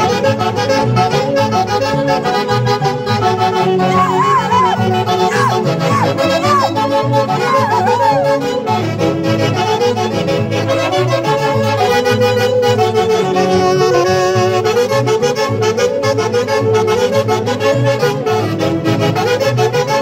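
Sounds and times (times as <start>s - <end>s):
saxophones playing melody: 0.0s - 20.0s.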